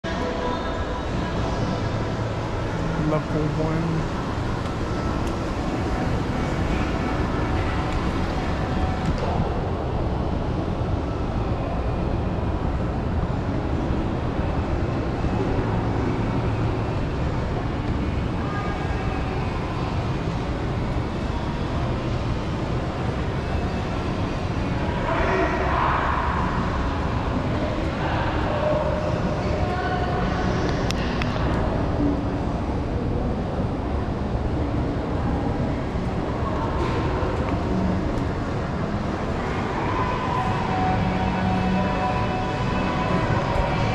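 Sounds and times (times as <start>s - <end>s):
faint indistinct voices: 0.0s - 43.9s
low rumbling mall ambience: 0.0s - 43.9s.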